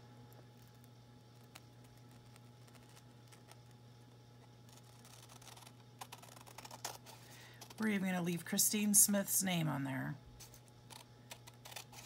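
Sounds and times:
scissors snipping paper: 0:04.7 - 0:07.8, 0:10.9 - 0:12.0.

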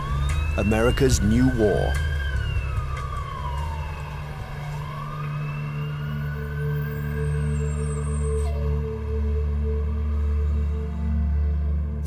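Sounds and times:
siren wailing: 0:00.0 - 0:12.0
steady low drone: 0:00.0 - 0:12.0.

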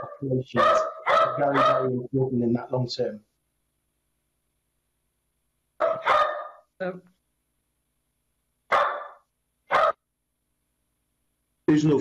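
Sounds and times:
dog barking: 0:00.0 - 0:02.0, 0:05.8 - 0:06.6, 0:08.7 - 0:10.0.

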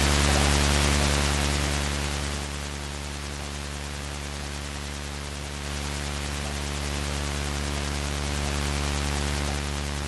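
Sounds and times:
low synthesizer drone: 0:00.0 - 0:10.0.

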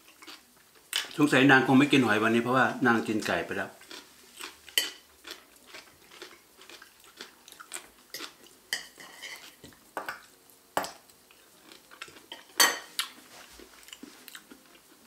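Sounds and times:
chewing: 0:03.8 - 0:09.8, 0:11.3 - 0:15.0
cutlery clinking on ceramic plates: 0:12.3 - 0:12.9.

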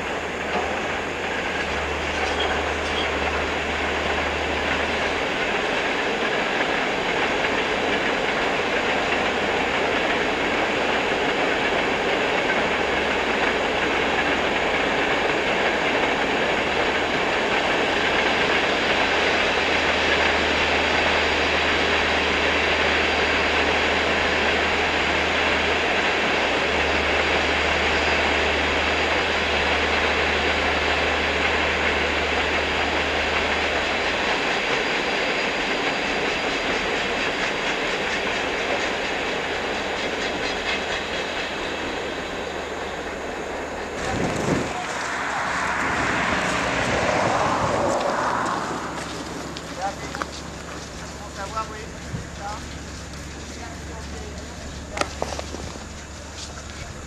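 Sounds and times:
loud rushing rumbling noise: 0:43.4 - 0:56.1
low hum: 0:44.3 - 0:56.9.

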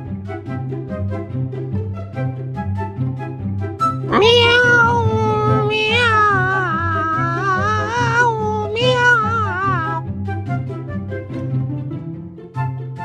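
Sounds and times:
cat yowling: 0:04.0 - 0:10.0.

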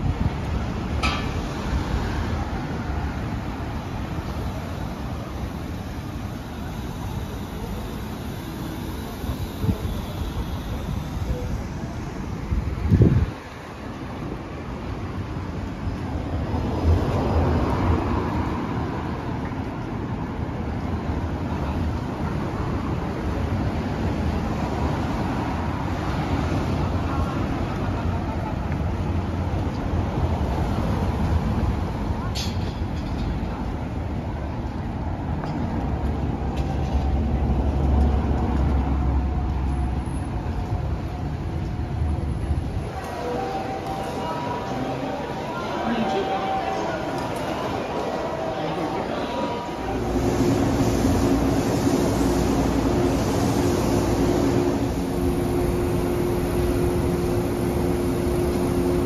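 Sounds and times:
cars passing: 0:00.0 - 0:59.0
murmur of station crowd: 0:00.0 - 0:59.0.

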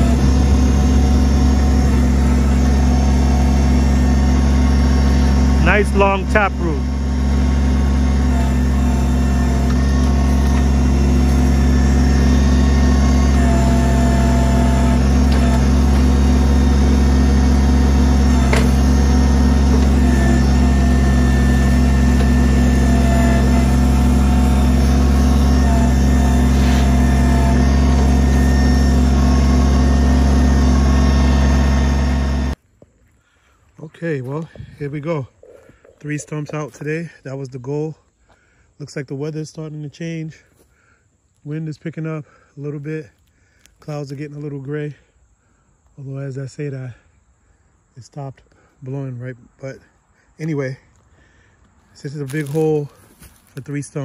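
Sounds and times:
backhoe digging: 0:00.0 - 0:32.6
diesel engine running: 0:00.0 - 0:32.6, 0:50.4 - 0:54.0.

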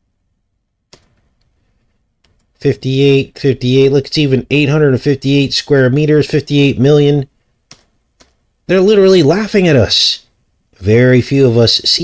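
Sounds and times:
computer click: 0:00.9 - 0:01.6, 0:07.7 - 0:08.4.

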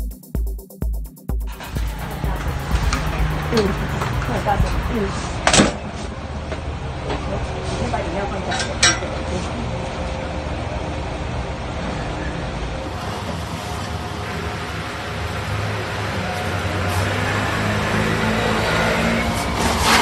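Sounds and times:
steady low rumble: 0:01.5 - 0:05.4.

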